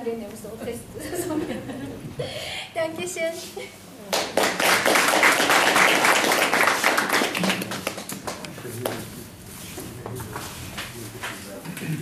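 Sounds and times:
audience applauding: 4.1 - 9.0.

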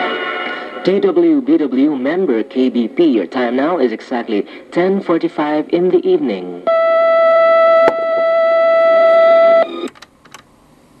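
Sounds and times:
low tape hiss: 0.0 - 11.0
steady electronic tone: 6.7 - 9.9.

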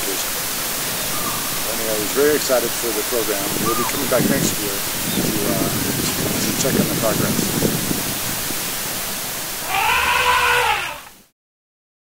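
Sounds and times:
steady hiss: 0.0 - 11.3
drawn-out animal call: 3.4 - 4.2, 9.6 - 11.1.

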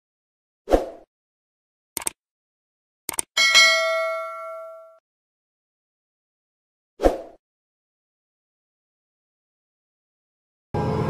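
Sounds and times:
mouse clicks: 3.1 - 3.3
notification bell ding: 3.4 - 5.0.

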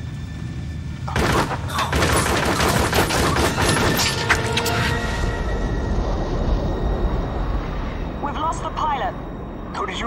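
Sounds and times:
jet engines droning: 0.0 - 2.0, 3.0 - 10.0
rapid automatic gunfire: 1.2 - 4.0.

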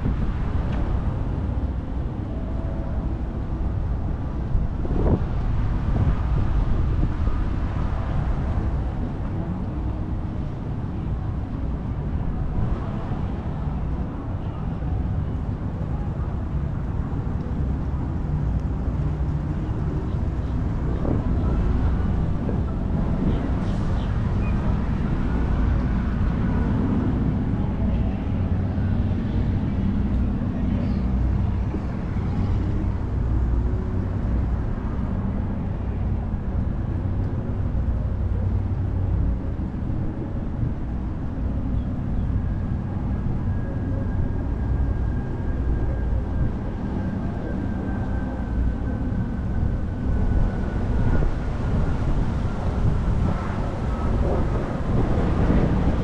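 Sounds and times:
road traffic rumble: 0.0 - 56.0.

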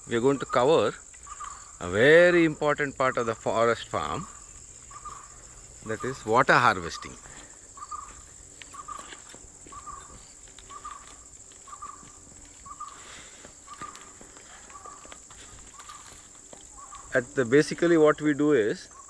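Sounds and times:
insects trilling: 0.0 - 19.0
footsteps through dry brush: 4.2 - 17.2.

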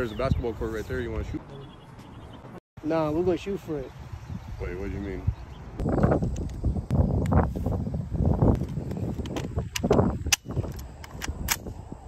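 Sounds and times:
microphone handling and wind noise: 3.9 - 12.0.

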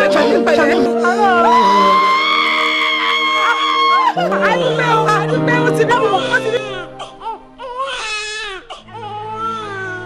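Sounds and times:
soft background music: 0.0 - 10.0
newborn baby crying: 1.1 - 10.0.

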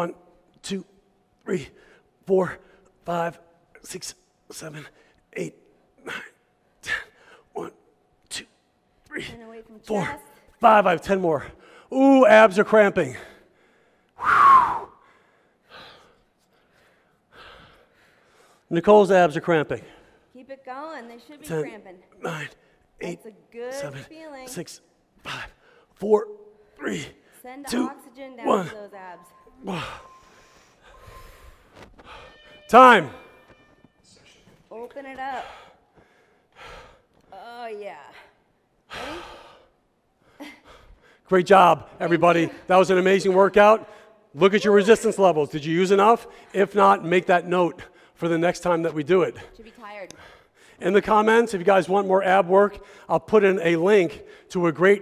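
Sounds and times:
man breathing heavily: 13.1 - 14.2, 14.9 - 18.7, 25.2 - 27.4, 35.3 - 37.2, 38.8 - 41.3.

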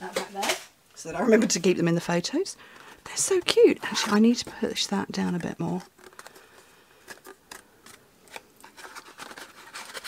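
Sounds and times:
cardstock scraping and clicking: 2.7 - 10.0.

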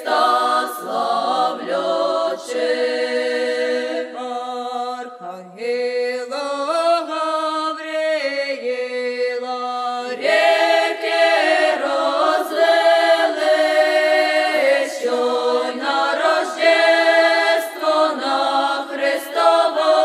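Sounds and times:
unaccompanied vocal ensemble singing: 0.0 - 5.8, 9.7 - 20.0.

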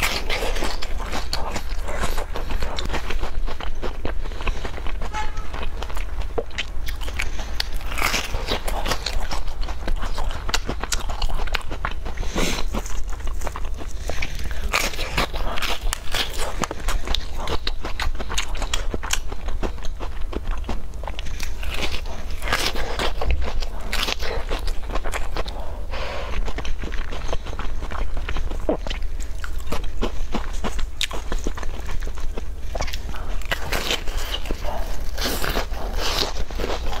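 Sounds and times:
biting and chewing cookie: 0.0 - 37.0.

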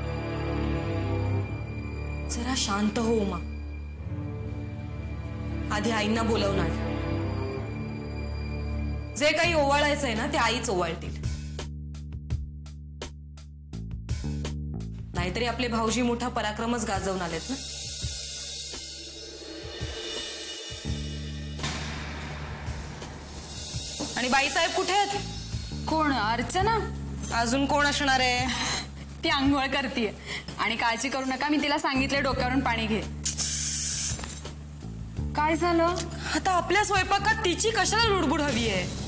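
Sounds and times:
low background music drone: 0.0 - 11.7, 14.1 - 31.2
woman speaking: 5.7 - 6.8, 9.2 - 11.2, 15.2 - 17.6, 24.2 - 25.3, 25.9 - 33.1, 35.3 - 39.0
hissing cymbal-like swell: 17.6 - 25.9.

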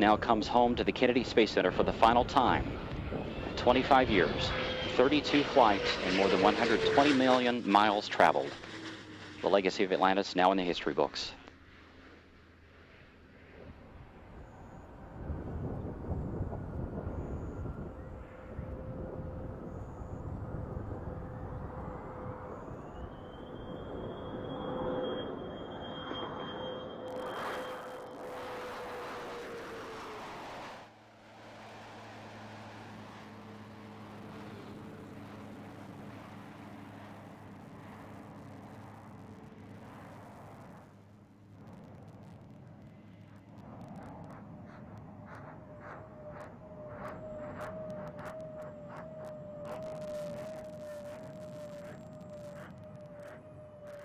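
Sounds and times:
rising whine: 0.0 - 54.0
rumble with steady tone: 0.0 - 54.0.

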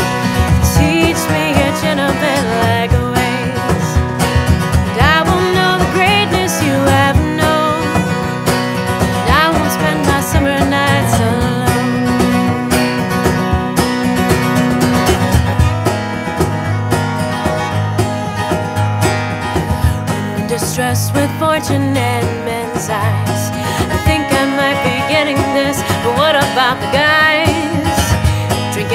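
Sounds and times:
cajon and snare beat: 0.0 - 20.9
acoustic guitar strumming: 0.0 - 28.9
fiddle with sliding notes: 21.6 - 28.9.

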